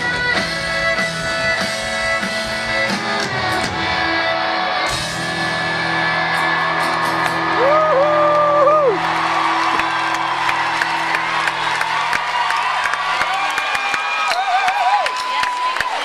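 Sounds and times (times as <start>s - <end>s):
crowd cheering and whistling: 0.4s - 16.0s
loud held whoop: 6.8s - 16.0s.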